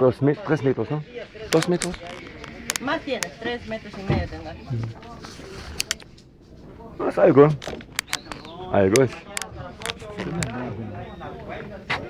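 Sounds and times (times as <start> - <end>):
faint voices: 0.0 - 12.0
sharp clicks: 1.5 - 3.3, 7.6 - 10.6.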